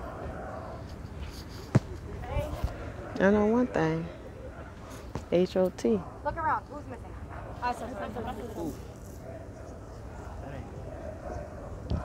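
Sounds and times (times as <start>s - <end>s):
faint distant voices: 0.0s - 12.0s
low outdoor background: 0.0s - 12.0s.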